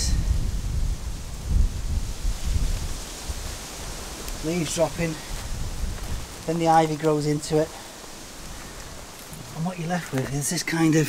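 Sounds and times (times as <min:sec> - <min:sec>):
wind buffeting microphone: 0:00.0 - 0:10.5.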